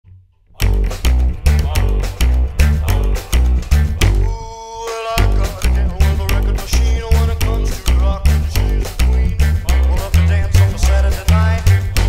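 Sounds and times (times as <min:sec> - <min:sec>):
slapped upright bass: 0:00.1 - 0:04.4, 0:05.0 - 0:12.0
rockabilly music: 0:00.4 - 0:12.0.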